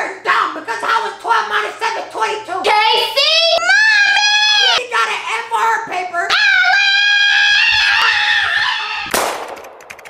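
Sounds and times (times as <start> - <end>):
high-pitched voice wailing: 2.8 - 4.8.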